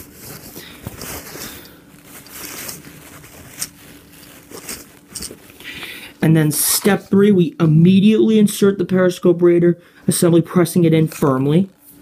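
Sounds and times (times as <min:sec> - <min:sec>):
paper towel rubbing and crinkling: 0:00.0 - 0:05.7.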